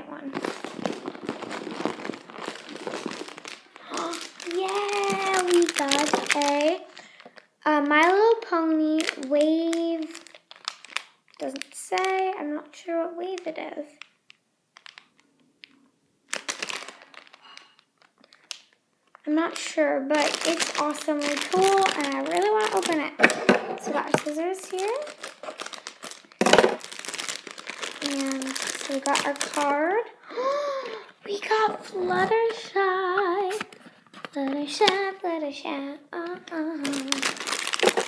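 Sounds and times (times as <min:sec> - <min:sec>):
plastic bag crinkling: 0:00.1 - 0:12.6, 0:13.2 - 0:30.1, 0:30.8 - 0:35.2, 0:36.5 - 0:38.0.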